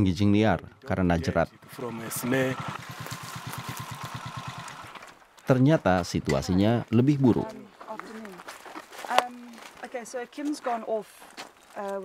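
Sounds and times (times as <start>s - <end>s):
motorcycle engine idling: 1.5s - 5.3s.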